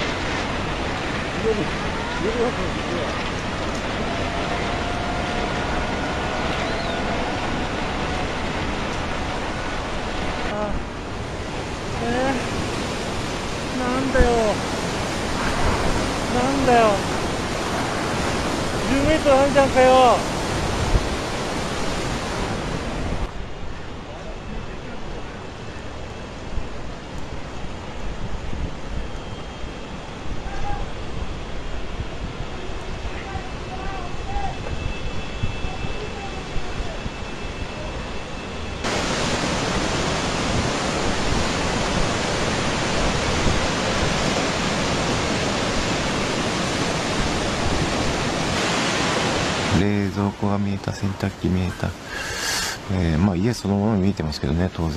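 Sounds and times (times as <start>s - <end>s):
wind buffeting microphone: 0.0s - 23.7s, 26.3s - 49.8s
floodwater rushing and churning: 0.0s - 54.9s.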